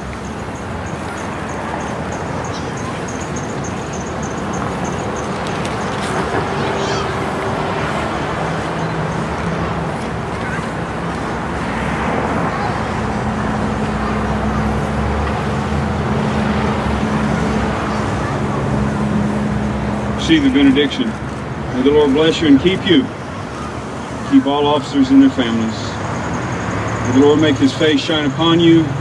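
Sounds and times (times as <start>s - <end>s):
vehicle engine low hum: 0.0s - 24.5s
road traffic: 0.0s - 29.0s.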